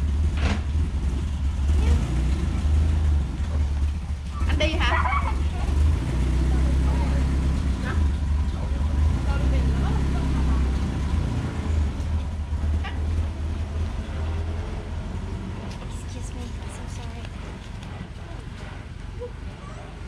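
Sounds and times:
vehicle engine humming: 0.0 - 20.0
faint voices murmuring: 4.2 - 20.0.

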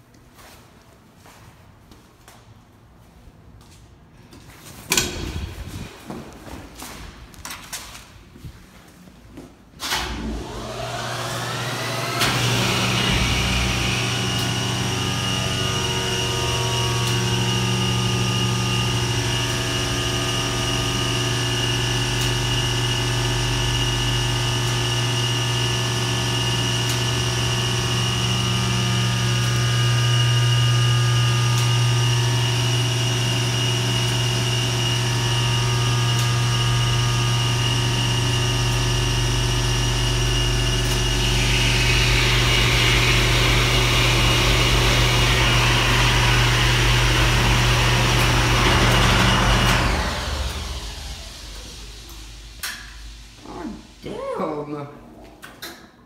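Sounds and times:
motor and pump humming: 9.8 - 54.1.

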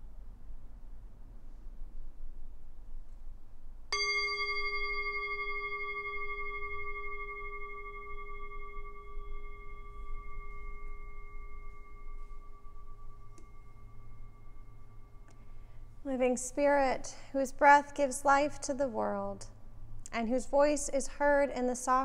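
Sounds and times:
meditation bell ringing: 4.0 - 16.0.

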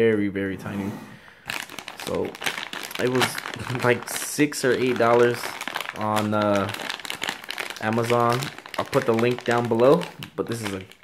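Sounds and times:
plastic bag crinkling: 1.5 - 11.0.

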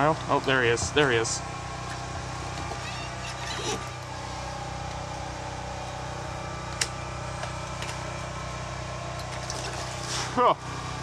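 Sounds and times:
motor humming: 0.0 - 11.0.

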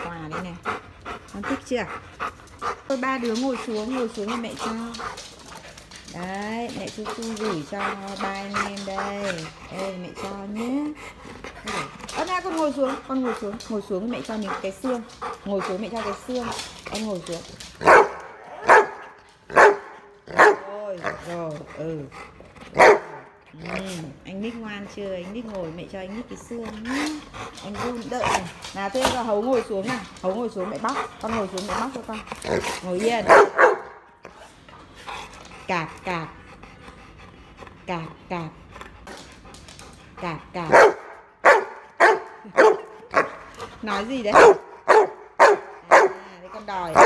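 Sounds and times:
dog panting: 0.0 - 47.0
dog barking: 17.8 - 20.7, 22.8 - 23.2, 33.2 - 34.0, 40.7 - 43.3, 44.3 - 46.2.

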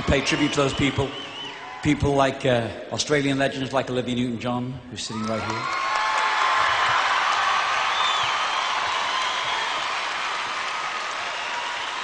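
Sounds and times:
audience applauding: 0.0 - 1.8, 5.2 - 12.0
cheers: 0.0 - 2.1, 5.0 - 12.0.

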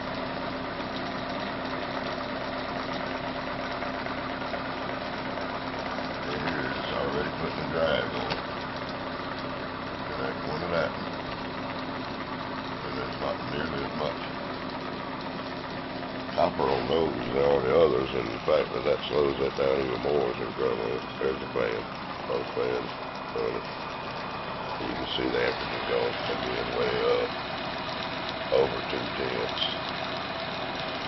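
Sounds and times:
small electric motor humming: 0.0 - 31.0.

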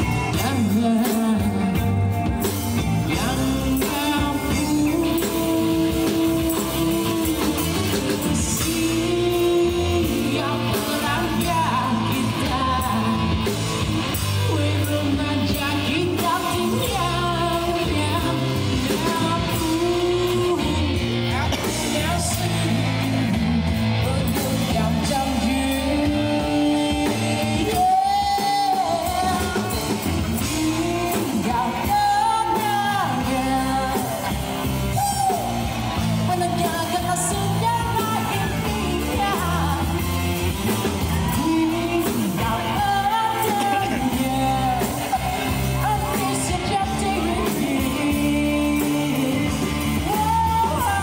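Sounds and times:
amplified electric guitar: 0.0 - 51.0
live rock band playing: 0.0 - 51.0
low bass notes: 0.0 - 51.0
person singing into a microphone: 0.0 - 51.0.

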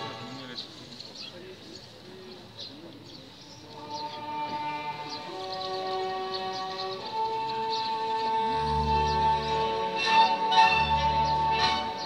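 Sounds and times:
orchestral string chords: 3.8 - 12.0.

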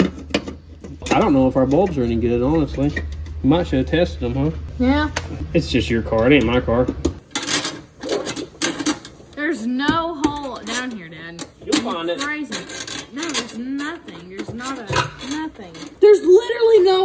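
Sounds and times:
voices talking: 1.0 - 7.0, 9.4 - 17.0.

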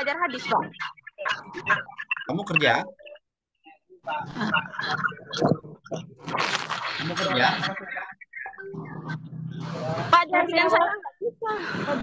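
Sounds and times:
distorted voice over video call: 0.0 - 12.0.

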